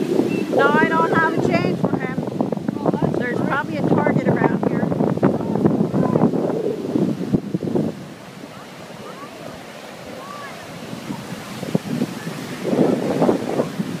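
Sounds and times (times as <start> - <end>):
ocean surf breaking: 0.0 - 14.0
wind buffeting microphone: 0.0 - 14.0.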